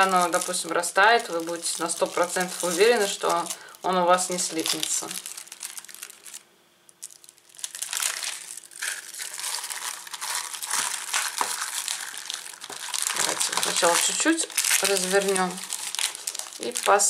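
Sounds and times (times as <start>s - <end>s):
plastic and foil wrapper crinkling: 0.0s - 17.0s.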